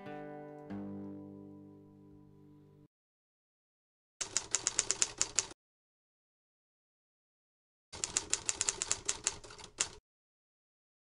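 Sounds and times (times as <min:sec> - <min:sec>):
typewriter keys clacking: 0:04.2 - 0:05.6, 0:08.0 - 0:10.0.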